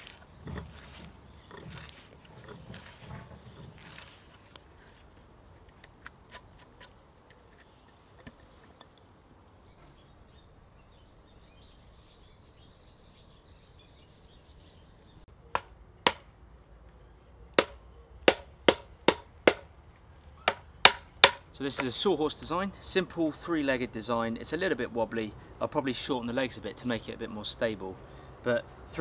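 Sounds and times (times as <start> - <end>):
wooden mallet striking wood: 15.5 - 16.3, 17.6 - 19.7, 20.4 - 21.9.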